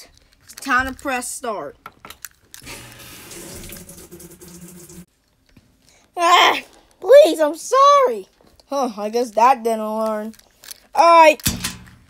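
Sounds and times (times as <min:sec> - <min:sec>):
water rushing into washing machine: 0:02.6 - 0:05.1.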